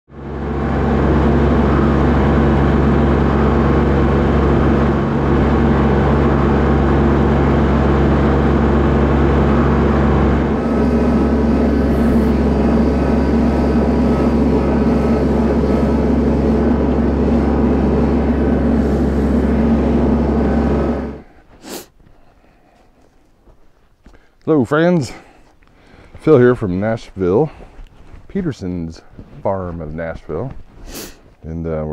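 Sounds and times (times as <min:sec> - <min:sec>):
tractor diesel engine running: 0:00.1 - 0:21.6.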